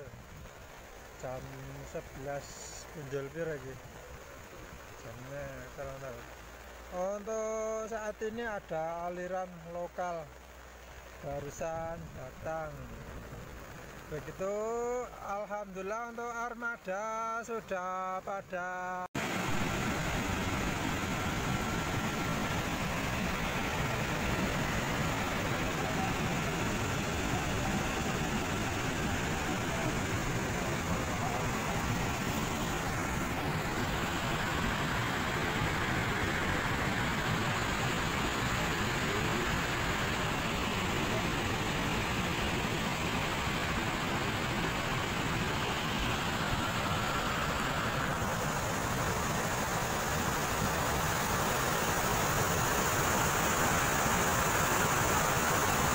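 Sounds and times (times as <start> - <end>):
mud flow rushing down river: 0.0 - 55.9.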